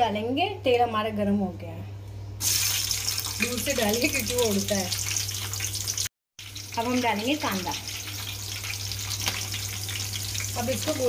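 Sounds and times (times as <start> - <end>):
vegetables sizzling in oil: 2.4 - 11.0.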